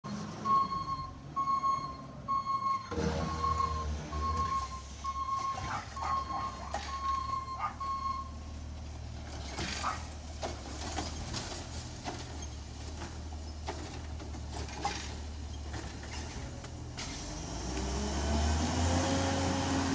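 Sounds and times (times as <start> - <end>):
truck reverse alarm beeping: 0.0 - 8.5
diesel engine running: 0.1 - 19.9.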